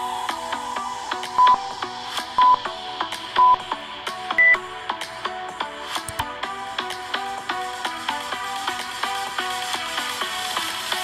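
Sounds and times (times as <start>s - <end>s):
background music: 0.0s - 11.0s
timer countdown beeps: 1.4s - 1.7s, 2.4s - 2.6s, 3.4s - 3.8s, 4.4s - 4.7s.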